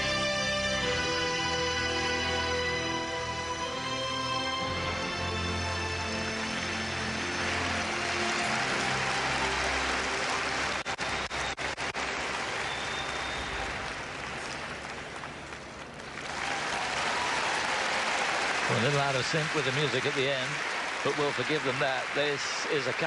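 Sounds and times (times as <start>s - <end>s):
orchestral music: 0.0s - 14.7s
large crowd applauding: 4.7s - 23.0s.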